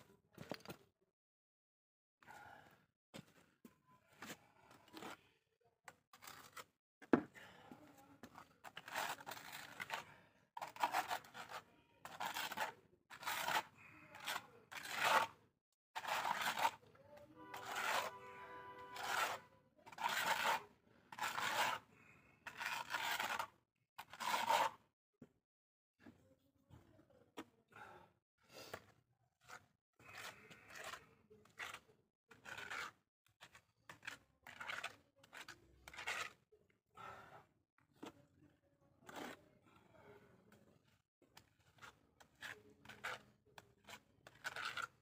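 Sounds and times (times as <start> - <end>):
trowel scraping cement on wall: 4.1 - 15.4, 16.0 - 24.9, 28.4 - 38.3, 39.0 - 39.5, 40.5 - 45.0.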